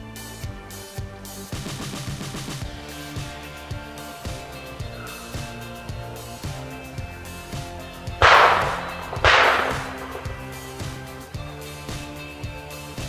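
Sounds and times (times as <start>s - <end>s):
background music: 0.0s - 13.0s
shotgun shots echoing: 8.2s - 11.2s.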